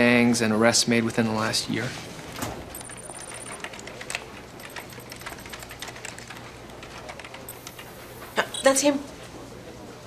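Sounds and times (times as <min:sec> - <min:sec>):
computer keyboard typing: 0:02.7 - 0:07.9.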